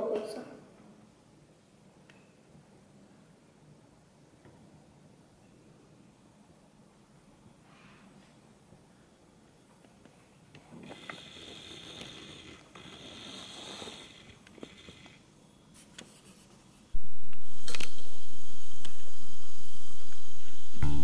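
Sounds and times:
guitar music: 20.8s - 21.0s.

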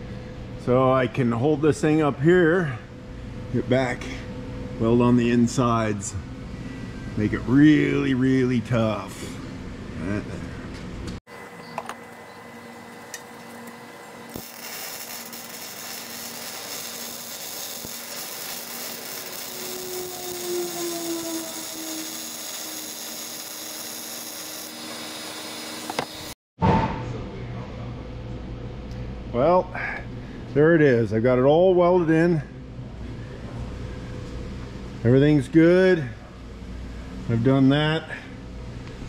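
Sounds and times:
arc welding sizzle: 11.4s - 26.4s.

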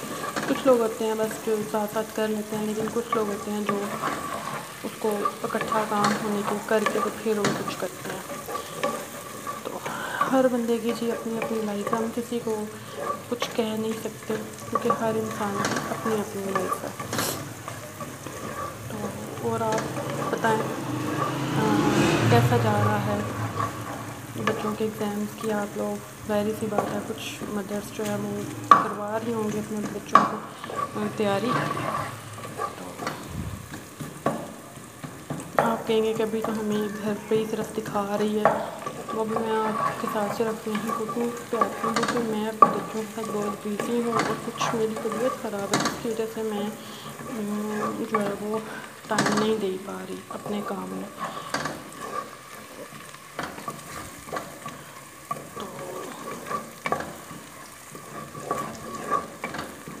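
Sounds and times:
onions frying in oil: 0.0s - 60.0s
spoon scraping a pot: 0.0s - 60.0s.

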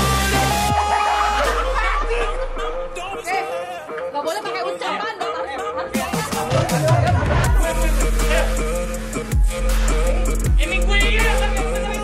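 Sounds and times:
group of people chattering: 1.2s - 10.4s.

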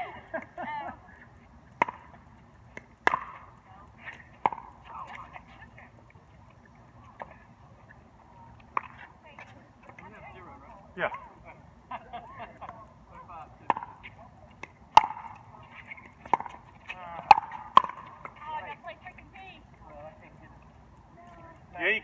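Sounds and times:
pickleball hitting paddles and court: 1.7s - 5.8s, 8.6s - 10.3s, 13.5s - 18.9s.

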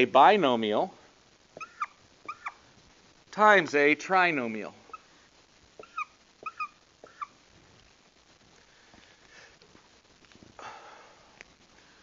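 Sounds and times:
marker squeaking on whiteboard: 1.6s - 2.6s, 5.8s - 7.4s.

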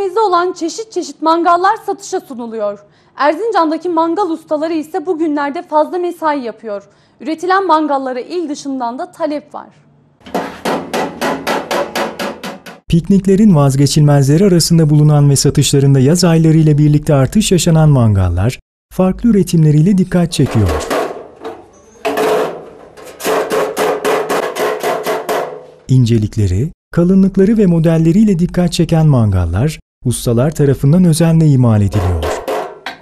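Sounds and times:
hammer striking sheet metal: 10.2s - 12.9s, 20.4s - 25.8s, 31.9s - 33.0s.

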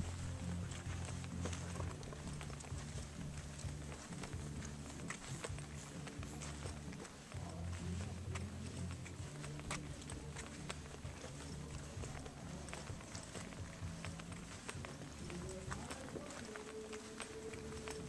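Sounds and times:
steady low rumble: 0.0s - 16.3s
footsteps on brick path: 0.0s - 18.0s.

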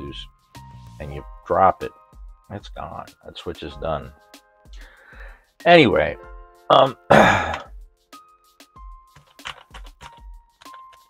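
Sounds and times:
soft background music: 0.0s - 11.0s
man clearing throat: 7.1s - 7.7s
typing on mechanical keyboard: 9.1s - 11.0s.

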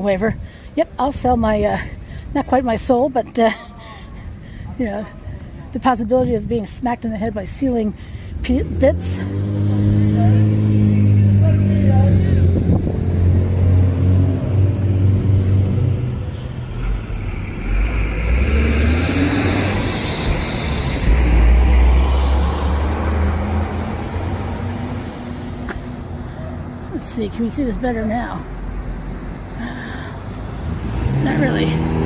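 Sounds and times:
engine running low hum: 8.0s - 32.0s
vehicle passing by: 8.4s - 32.0s.

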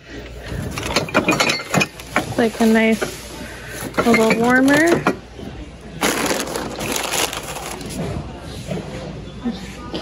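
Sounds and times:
hand rummaging through plastic bin: 0.5s - 5.2s, 6.0s - 8.2s
ceramic and glass clinking: 0.8s - 2.3s.

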